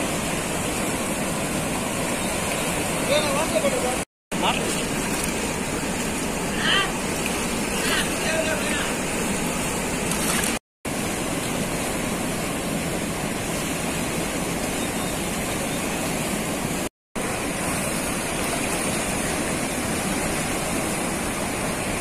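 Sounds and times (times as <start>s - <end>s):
floodwater rushing through spillway: 0.0s - 22.0s.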